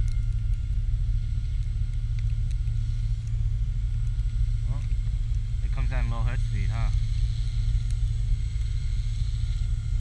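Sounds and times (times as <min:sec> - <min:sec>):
low rumble: 0:00.0 - 0:10.0
helicopter high whine: 0:02.7 - 0:10.0.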